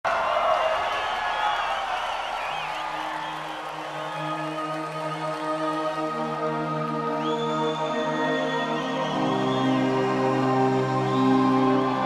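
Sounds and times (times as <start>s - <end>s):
audience whistles and cheers: 0.1s - 12.0s
held synthesizer chord: 4.2s - 12.0s.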